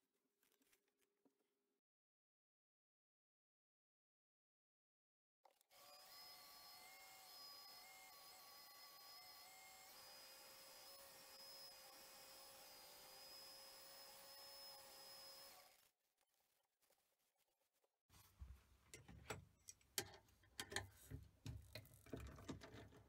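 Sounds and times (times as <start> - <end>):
wood lathe motor whine: 5.8 - 15.8.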